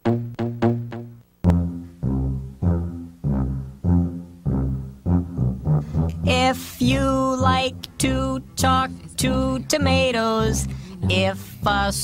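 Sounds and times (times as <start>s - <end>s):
tuba low notes: 0.0s - 12.0s.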